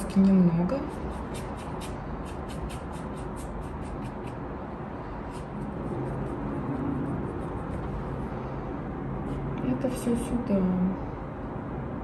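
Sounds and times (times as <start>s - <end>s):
low background rumble: 0.0s - 12.0s
brush scrubbing paint on canvas: 0.8s - 4.4s, 5.3s - 8.2s.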